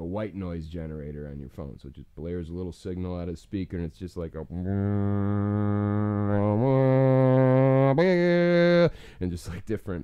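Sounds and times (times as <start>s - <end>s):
man humming low drone: 4.5s - 8.9s.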